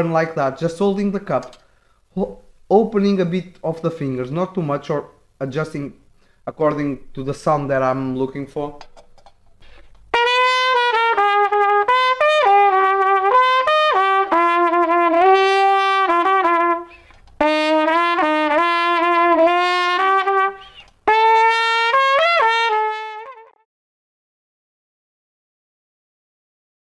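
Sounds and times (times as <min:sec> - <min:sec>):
muted trumpet melody: 0:10.1 - 0:23.6.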